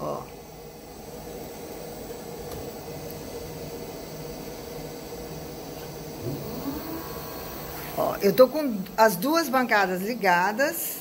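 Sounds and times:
motors humming: 0:00.9 - 0:11.0
rising and falling tone: 0:06.2 - 0:08.2.

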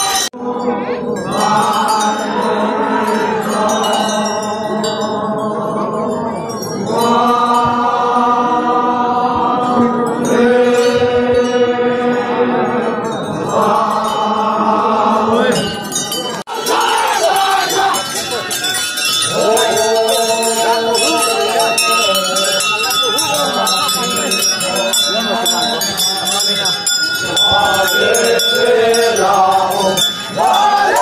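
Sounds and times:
men chanting in unison: 0:00.0 - 0:31.0.

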